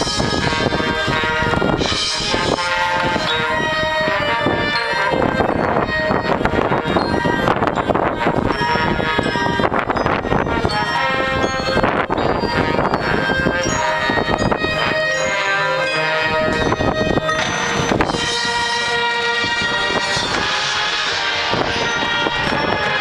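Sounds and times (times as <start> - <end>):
marching band playing: 0.0 - 23.0.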